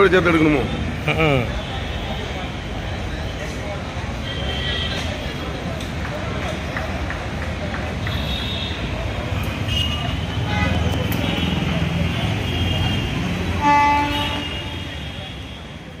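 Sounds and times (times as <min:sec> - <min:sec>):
street traffic rumble: 0:00.0 - 0:16.0
faint voices: 0:00.2 - 0:13.6
vehicle horn: 0:08.1 - 0:15.8.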